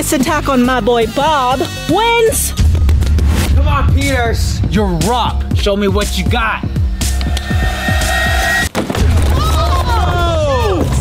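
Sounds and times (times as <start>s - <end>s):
deep falling bass hits: 2.4s - 8.4s
held steady tone: 6.8s - 8.7s.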